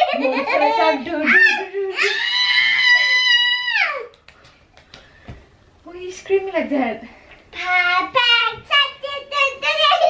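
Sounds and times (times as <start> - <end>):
child screaming: 1.4 - 4.1.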